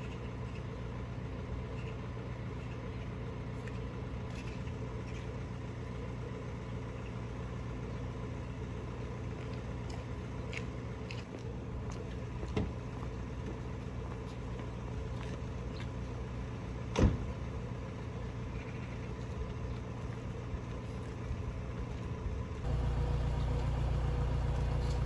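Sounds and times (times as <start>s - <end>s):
vehicle engine idling: 0.2s - 25.0s.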